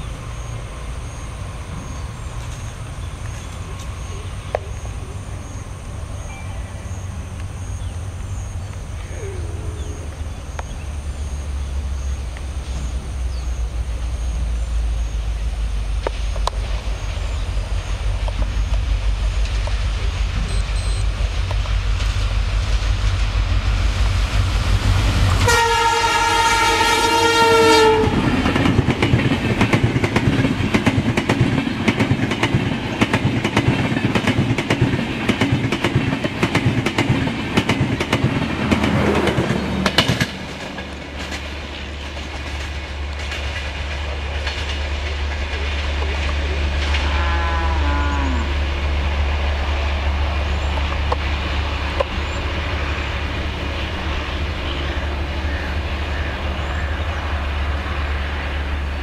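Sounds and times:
low rumble of train: 0:00.0 - 0:59.0
train wheels clacking over rail joints: 0:25.1 - 0:47.4
locomotive horn blast: 0:25.3 - 0:28.5, 0:46.7 - 0:48.9.

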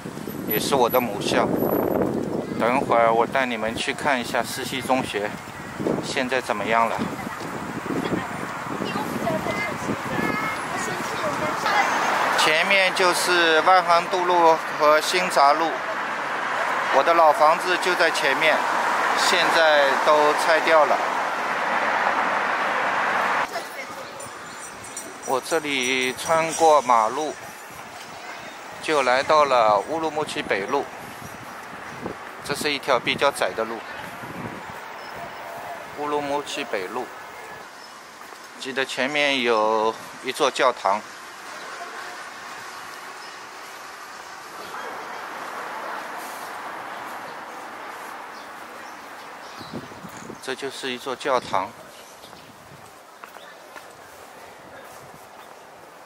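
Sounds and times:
cars passing: 0:00.0 - 0:52.2
scooter passing: 0:07.0 - 0:38.6, 0:41.0 - 0:49.6
vehicle driving past: 0:15.7 - 0:23.5.

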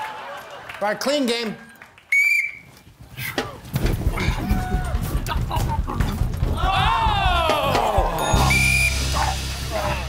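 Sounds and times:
background music: 0:04.1 - 0:10.0
men shouting: 0:06.4 - 0:10.0.

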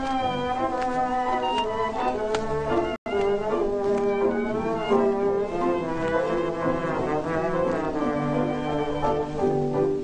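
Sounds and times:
orchestral music with brass: 0:00.0 - 0:10.0.

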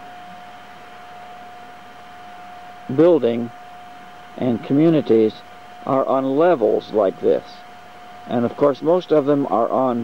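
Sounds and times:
steady hiss: 0:00.0 - 0:10.0
thin steady whine: 0:00.0 - 0:10.0.

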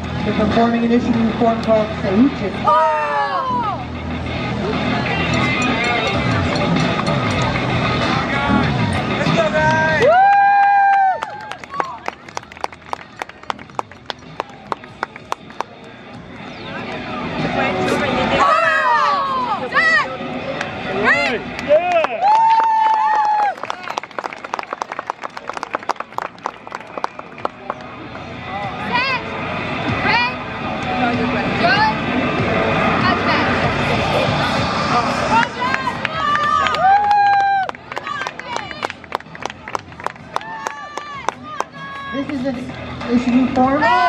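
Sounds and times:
background music with steady beat: 0:00.0 - 0:18.5, 0:26.0 - 0:44.0.

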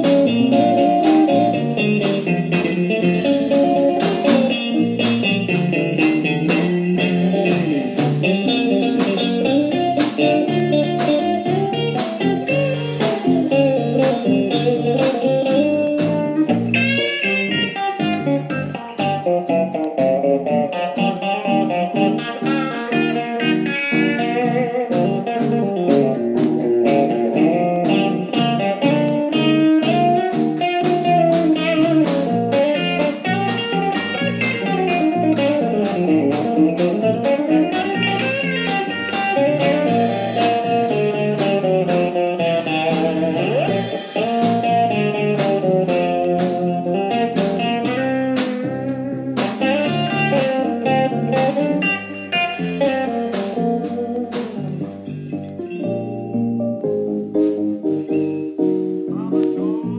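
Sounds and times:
steady drum beat: 0:00.0 - 0:55.3
electric guitar: 0:00.0 - 0:59.9
keyboard: 0:00.0 - 0:59.9.

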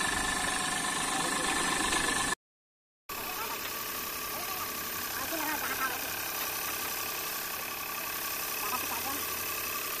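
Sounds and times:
engine idling: 0:00.0 - 0:02.4, 0:03.1 - 0:10.0.

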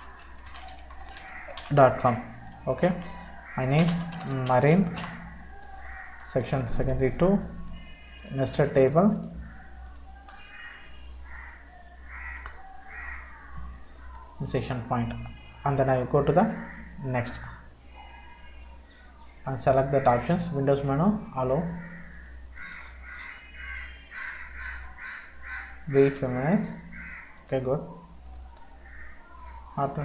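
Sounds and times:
low electrical hum: 0:00.0 - 0:30.0
computer mouse clicks: 0:08.2 - 0:10.5, 0:22.1 - 0:22.9
bird calling: 0:21.7 - 0:26.1.

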